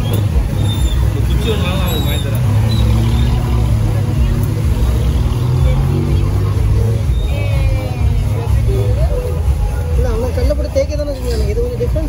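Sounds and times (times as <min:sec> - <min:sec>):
motorbike engines humming: 0:00.0 - 0:12.0
people talking: 0:00.0 - 0:12.0.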